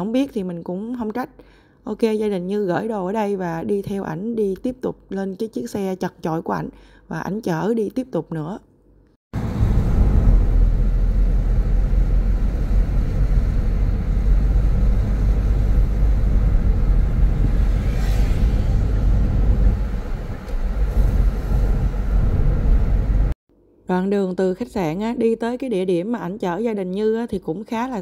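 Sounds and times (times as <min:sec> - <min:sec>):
car engine from inside cabin: 0:09.4 - 0:17.8.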